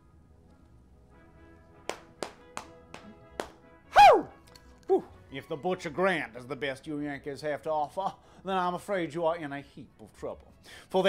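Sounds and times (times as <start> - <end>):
sharp taps: 1.9 - 3.6
short loud falling cry: 3.9 - 4.3.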